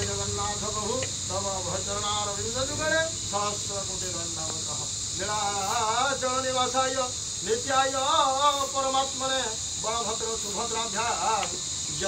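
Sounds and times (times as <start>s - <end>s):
high-pitched insect drone: 0.0s - 12.0s
person chanting: 0.0s - 12.0s.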